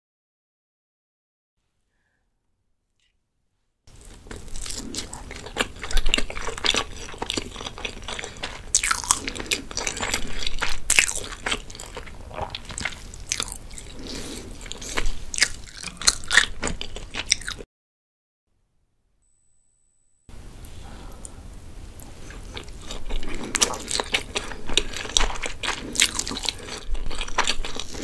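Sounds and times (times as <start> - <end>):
chewing with wet mouth clicks: 22.2 - 28.0.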